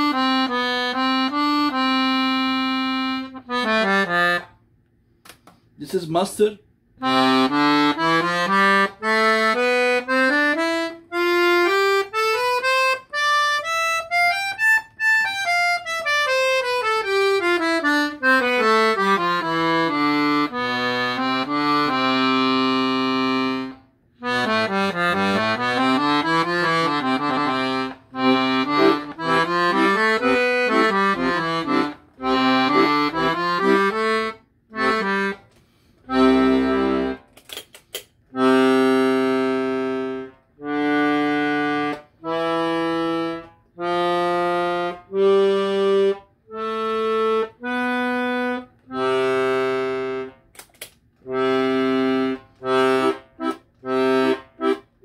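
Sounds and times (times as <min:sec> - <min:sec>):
piano accordion playing: 0:00.0 - 0:04.6, 0:07.0 - 0:37.4, 0:38.3 - 0:50.5, 0:51.2 - 0:55.0.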